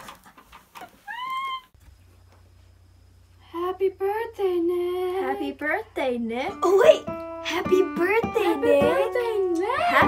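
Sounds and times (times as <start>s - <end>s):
high-pitched mewing cry: 1.0s - 1.8s.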